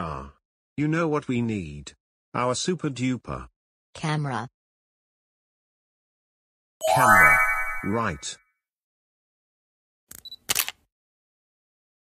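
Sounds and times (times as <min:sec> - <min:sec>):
camera shutter clicks: 0:10.1 - 0:10.8.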